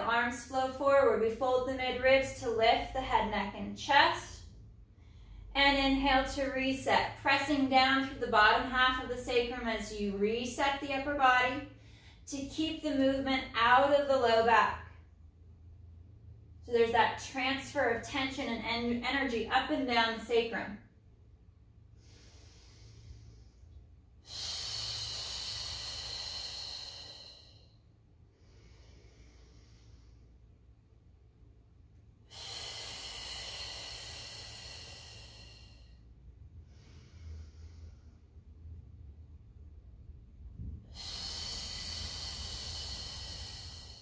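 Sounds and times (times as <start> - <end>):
woman inhaling: 4.4 - 5.5, 11.7 - 12.3, 21.6 - 31.0, 32.0 - 38.5, 40.6 - 44.0
woman exhaling with a hiss: 24.2 - 27.8, 32.2 - 36.0, 40.8 - 44.0.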